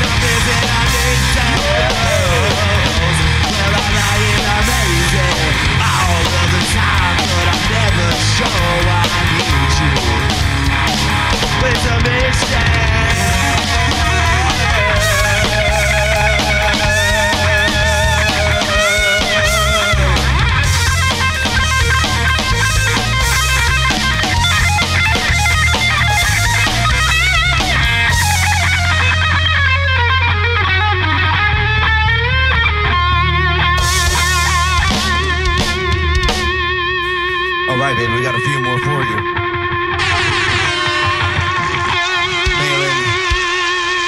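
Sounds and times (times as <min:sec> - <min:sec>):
bass and drums: 0:00.0 - 0:44.0
electric guitar lead: 0:00.0 - 0:44.0.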